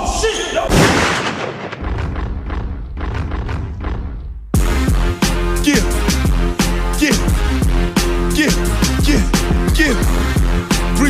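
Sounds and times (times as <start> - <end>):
gunshot echo: 0.7 - 1.9.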